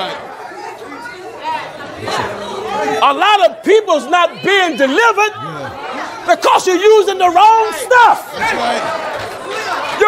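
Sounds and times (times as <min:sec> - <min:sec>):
congregation calling out responses: 0:00.0 - 0:10.0
preacher's voice: 0:02.0 - 0:08.8.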